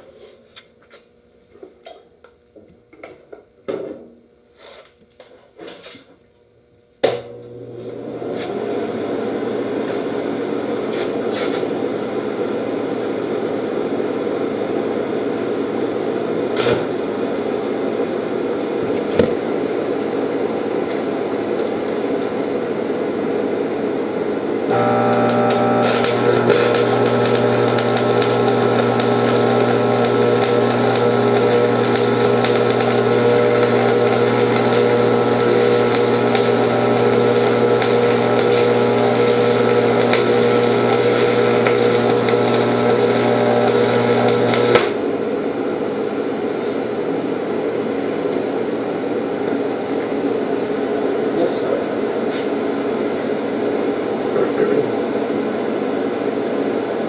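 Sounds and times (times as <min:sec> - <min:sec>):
welder electrical hum: 0:06.4 - 0:57.0
welding arc crackling hiss: 0:24.7 - 0:45.0.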